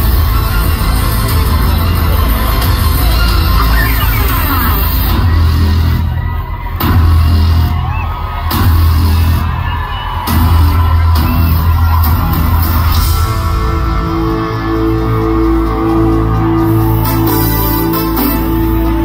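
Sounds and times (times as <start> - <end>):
drum kit: 0.0 - 19.0
heavy bass: 0.0 - 19.0
live rock band playing: 9.6 - 19.0.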